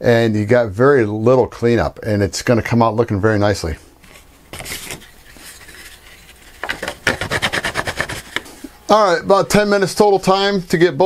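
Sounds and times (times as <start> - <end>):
sandpaper scratching on plywood: 7.0 - 8.4.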